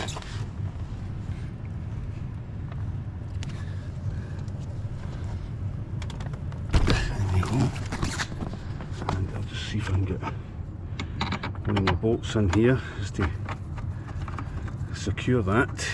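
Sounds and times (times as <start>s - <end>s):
steady low hum: 0.0s - 15.9s.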